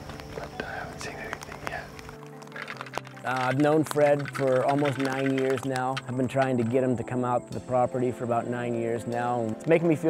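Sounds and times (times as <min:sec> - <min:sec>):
man whispering: 0:00.4 - 0:02.0.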